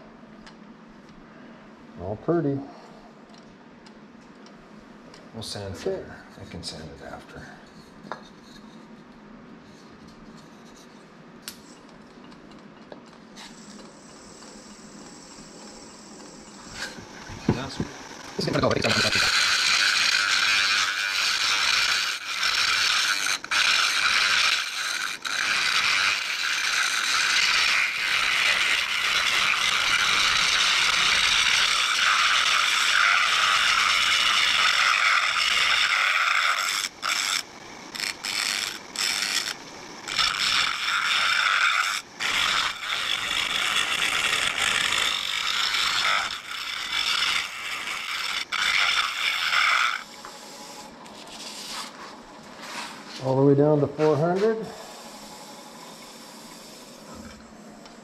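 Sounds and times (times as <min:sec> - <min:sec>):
lathe tool cutting wood hiss: 0:13.4 - 0:52.0, 0:54.0 - 0:57.3.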